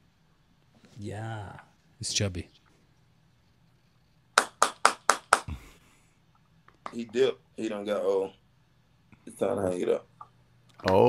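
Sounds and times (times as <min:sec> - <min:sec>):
sharp hand claps: 0:04.4 - 0:05.6.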